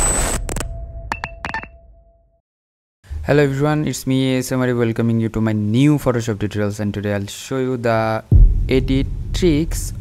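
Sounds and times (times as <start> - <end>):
electronic clicks and bleeps: 0.0 - 1.8.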